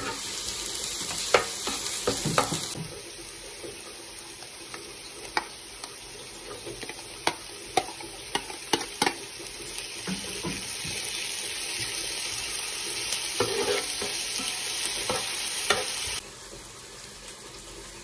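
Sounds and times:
onions sizzling in oil: 0.0s - 18.0s
utensil clacking and scraping pan: 6.8s - 9.2s, 13.4s - 16.1s.

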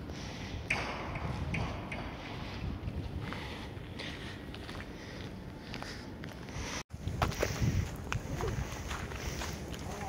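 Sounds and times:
wind on microphone: 0.0s - 4.1s, 6.9s - 10.0s
footsteps on pavement: 2.2s - 10.0s.

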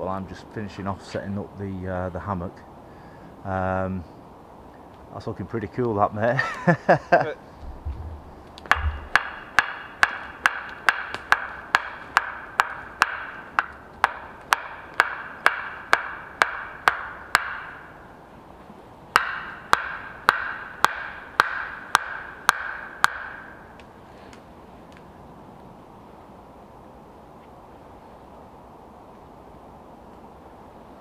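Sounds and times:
wooden stake knocking: 7.6s - 18.0s, 19.1s - 23.9s.

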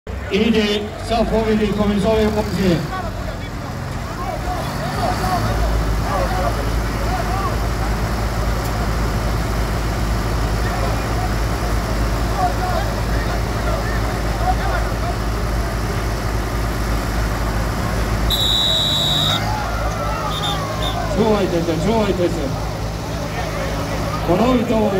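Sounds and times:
tractor diesel engines idling: 0.1s - 24.9s
high whistle-like tone: 18.3s - 19.5s, 20.2s - 21.1s.

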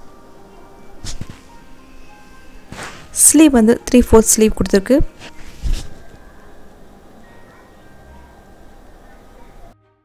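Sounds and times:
faint background music: 0.0s - 10.0s
short swishes: 2.7s - 3.2s.

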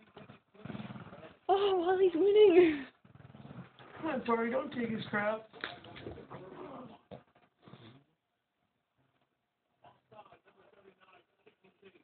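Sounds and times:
dogs growling: 0.0s - 1.6s, 2.5s - 8.1s.

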